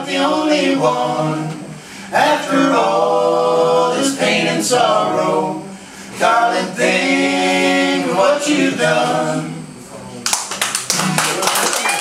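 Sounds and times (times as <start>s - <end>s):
voices: 0.0s - 10.3s
small audience clapping: 10.2s - 12.0s.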